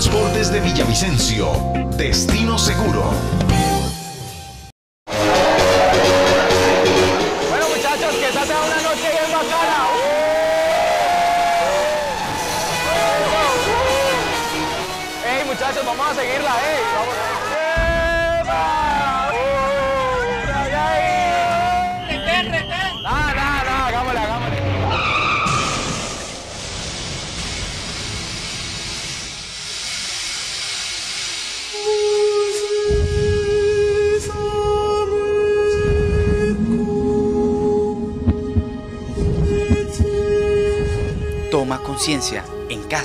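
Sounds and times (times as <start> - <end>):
backing track: 0.0 - 24.6, 35.6 - 43.0
car tyres squealing: 24.4 - 26.5
noisy hiss: 26.2 - 34.3.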